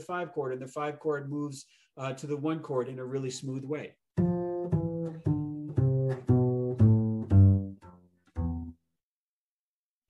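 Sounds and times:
double bass notes: 4.2 - 8.8.

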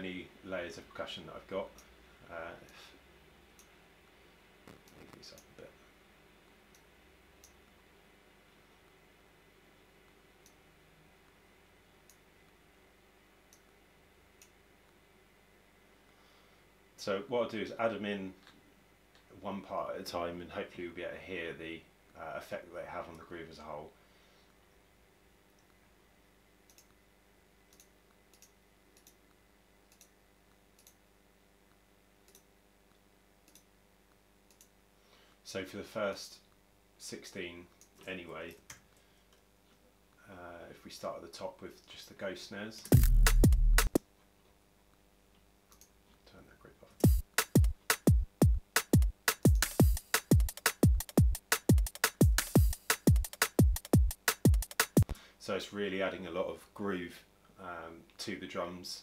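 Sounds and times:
computer mouse clicks: 26.7 - 27.0, 27.7 - 29.2, 29.9 - 30.1, 30.8 - 31.0, 32.3 - 32.5, 33.4 - 33.7, 34.5 - 34.7, 45.7 - 45.9.

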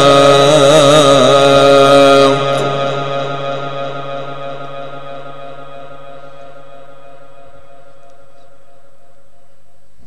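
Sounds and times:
recitation over loudspeaker: 0.0 - 9.9.

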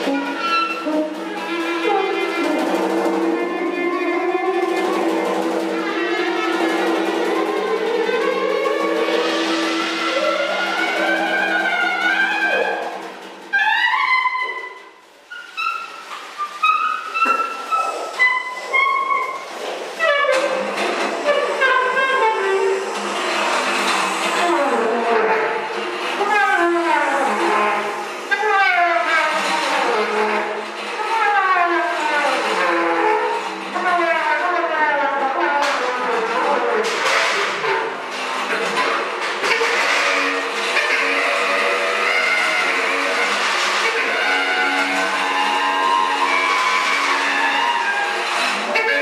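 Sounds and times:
tuba: 0.0 - 14.8, 16.6 - 49.0
tuba moaning tones: 0.0 - 14.8
object rubbed on snare drum: 0.0 - 34.7
bass clarinet: 0.0 - 49.0
saxophone sliding tones: 0.0 - 49.0.

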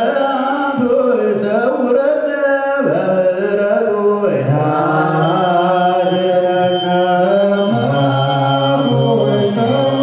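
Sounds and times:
men chanting liturgical chant: 0.0 - 10.0.

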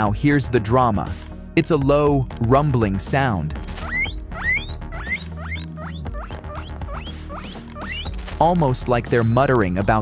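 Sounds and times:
background music: 0.0 - 10.0
guinea pig squeaking: 3.6 - 8.8.

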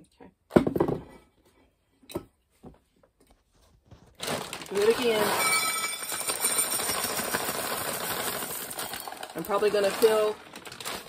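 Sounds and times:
dry beans pouring onto a plate: 4.7 - 11.0.

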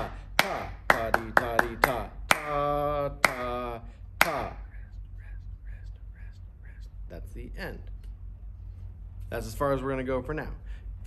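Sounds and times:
hand claps: 0.0 - 4.7
man chanting syllables: 0.0 - 7.9.

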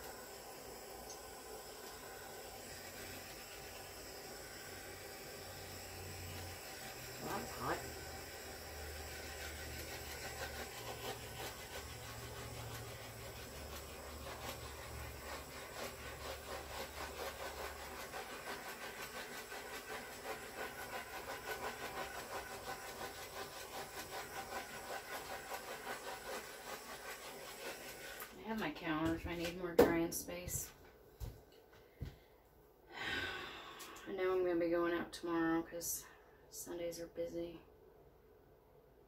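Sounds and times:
heat tool blowing hiss: 0.0 - 28.4.

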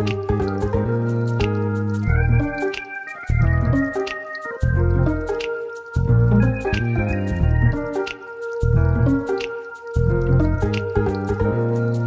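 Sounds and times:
light instrumental music: 0.0 - 12.0.

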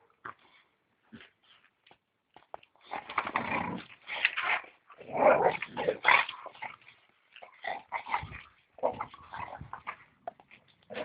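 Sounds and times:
dogs growling in play: 2.8 - 11.0.

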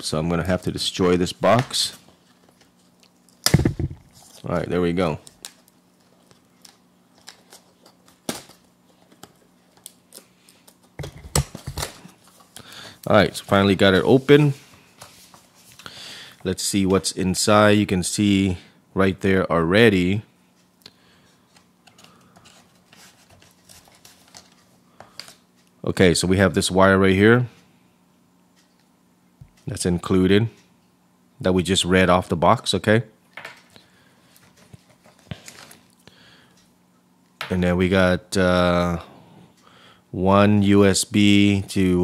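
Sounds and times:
faint steady hum: 0.0 - 42.0
sharp cardboard crack: 3.4 - 4.0.

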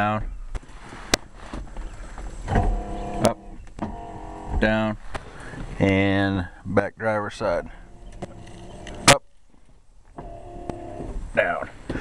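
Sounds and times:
electric window motor running: 2.5 - 4.7, 7.9 - 9.1, 10.2 - 11.2
window motor stopping: 2.5 - 4.7, 7.9 - 9.2, 10.2 - 11.2.

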